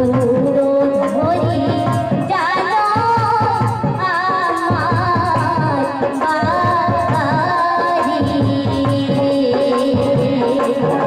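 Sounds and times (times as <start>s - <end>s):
steady drum beat: 0.0s - 11.0s
woman singing into a microphone: 0.0s - 11.0s.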